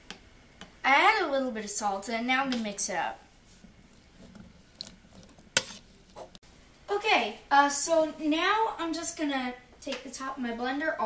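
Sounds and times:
spoon scraping in a bowl: 3.6 - 6.4.

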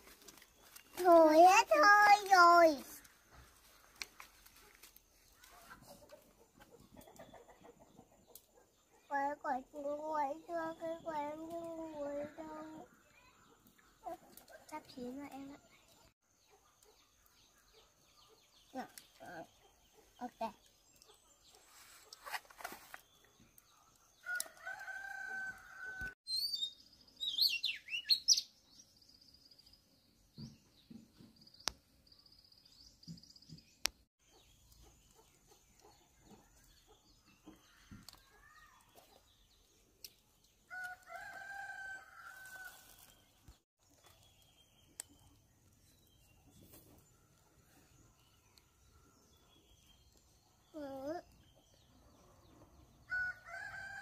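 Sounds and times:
rooster crowing: 24.2 - 26.2, 40.7 - 42.9
small bird chirping: 26.3 - 53.2.

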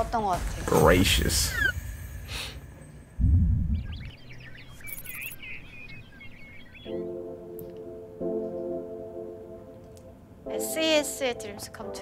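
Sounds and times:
birds chirping: 0.9 - 10.0
brief low rumble: 3.2 - 4.2.

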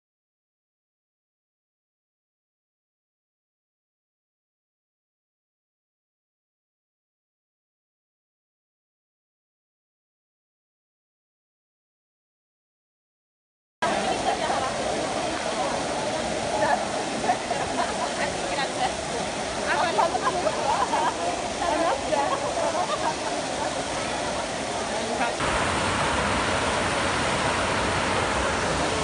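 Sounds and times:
crowd chatter: 13.8 - 25.8
fountain water splashing: 13.8 - 29.0.

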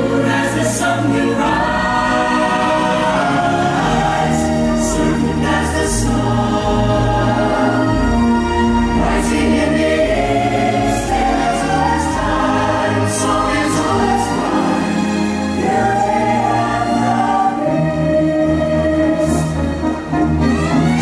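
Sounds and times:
choir singing sustained chords: 0.0 - 21.0
orchestral backing: 0.0 - 21.0.

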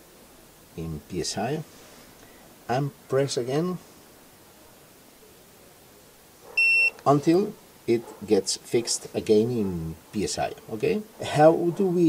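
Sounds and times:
high-pitched electronic beep: 6.6 - 6.9.

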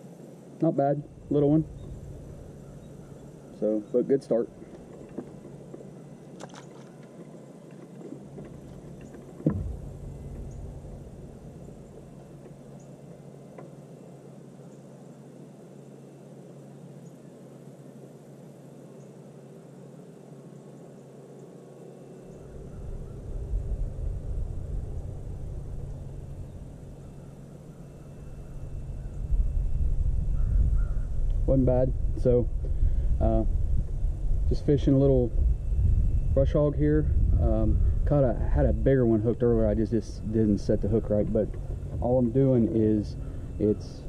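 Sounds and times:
low rumble: 0.8 - 6.4, 7.5 - 13.2, 22.3 - 44.0
sharp knock: 9.4 - 9.9.

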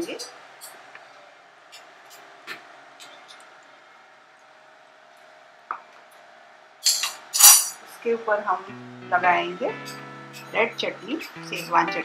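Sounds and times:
metal plate clanks: 6.8 - 7.8
steel cookware clinking: 6.8 - 7.8.

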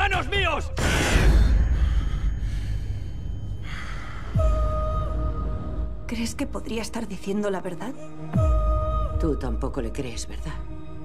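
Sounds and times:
low rumbling drone: 0.8 - 7.2.

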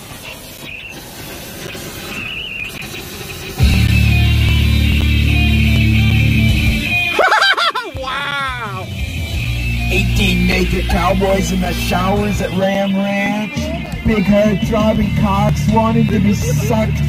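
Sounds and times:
song with heavy bass line: 3.5 - 17.0.

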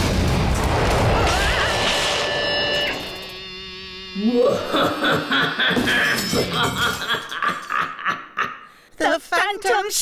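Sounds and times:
cartoon character laughing: 4.2 - 8.6.

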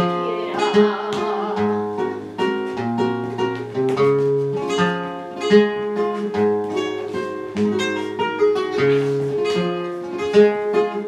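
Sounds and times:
flamenco guitar: 0.0 - 11.0.

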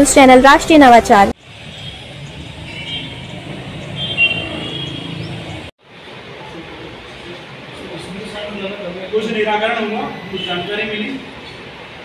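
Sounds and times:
passing road traffic rumble: 0.6 - 12.0.

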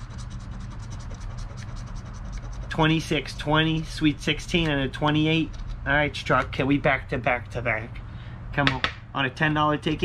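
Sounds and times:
coin scraping scratch card: 0.0 - 3.3.

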